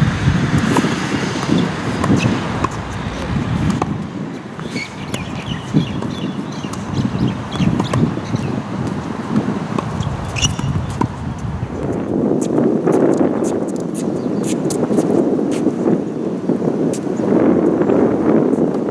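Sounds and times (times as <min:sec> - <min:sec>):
wind rumbling on microphone: 0:00.0 - 0:18.9
racket hitting tennis ball: 0:00.5 - 0:11.5
short high squeaks: 0:04.6 - 0:05.6, 0:10.0 - 0:10.8.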